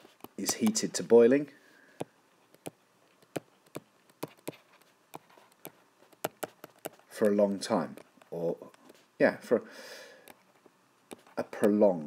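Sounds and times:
stylus tapping on glass screen: 0:00.2 - 0:00.9, 0:02.0 - 0:09.0, 0:11.1 - 0:11.8.

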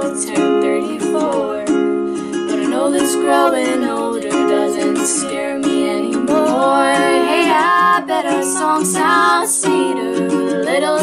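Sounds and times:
ukulele strumming: 0:00.0 - 0:11.0
woman singing: 0:00.0 - 0:11.0.

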